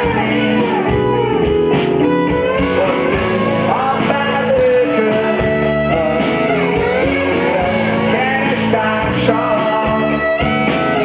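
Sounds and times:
drums: 0:00.0 - 0:11.0
electric guitar bending notes: 0:00.0 - 0:11.0
keyboards: 0:00.0 - 0:11.0.

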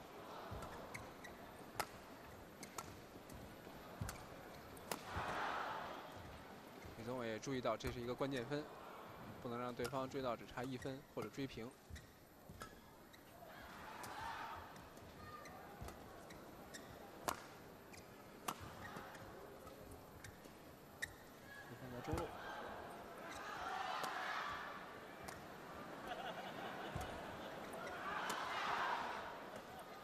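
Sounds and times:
arena crowd noise: 0:00.0 - 0:11.7, 0:13.0 - 0:20.0, 0:21.4 - 0:30.0
racket hitting shuttlecock: 0:01.7 - 0:03.4, 0:04.0 - 0:05.4, 0:17.2 - 0:19.2, 0:24.0 - 0:24.2.

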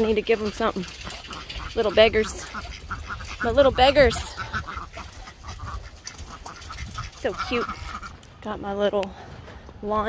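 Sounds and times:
young waterfowl calling softly: 0:00.0 - 0:08.2.

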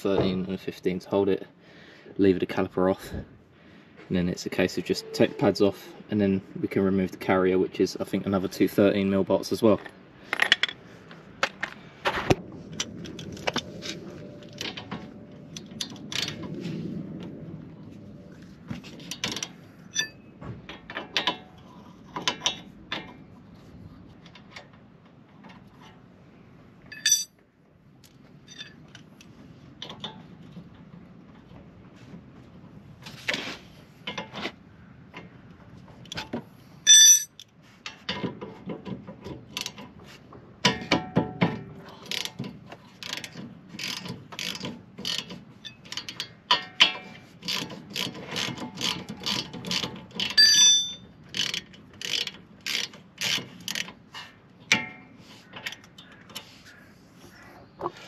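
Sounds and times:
metallic tool clinks: 0:26.9 - 0:27.3, 0:36.9 - 0:37.4, 0:50.4 - 0:51.0
ratchet wrench clicking: 0:43.0 - 0:46.2, 0:47.4 - 0:53.9.

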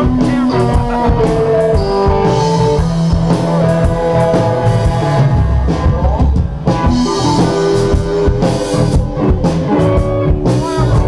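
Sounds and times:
blues-rock band playing: 0:00.0 - 0:11.0
electric guitar note bending: 0:00.0 - 0:11.0.

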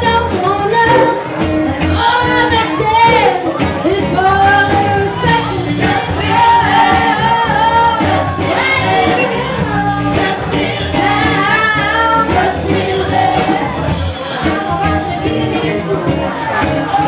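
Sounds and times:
live band playing: 0:00.0 - 0:17.0
women singing together: 0:00.0 - 0:17.0.

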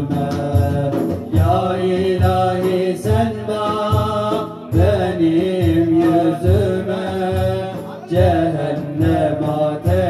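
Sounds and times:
deep frame drum beats: 0:00.0 - 0:10.0
men singing a hymn: 0:00.0 - 0:10.0.

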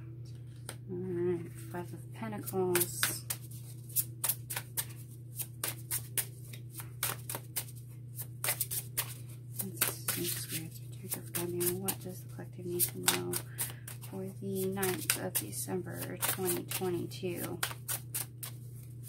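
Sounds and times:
steady low hum: 0:00.0 - 0:19.0
cards being shuffled: 0:02.4 - 0:19.0.

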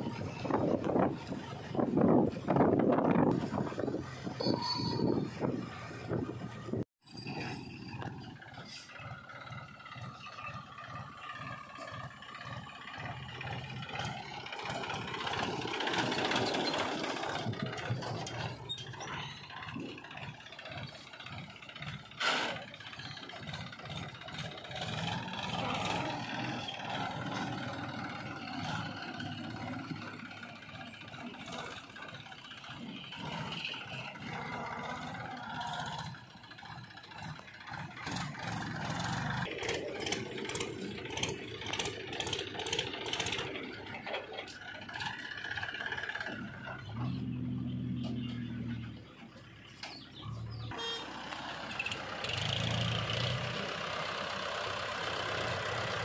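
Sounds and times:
diesel tractor engines under load: 0:00.0 - 0:56.0.

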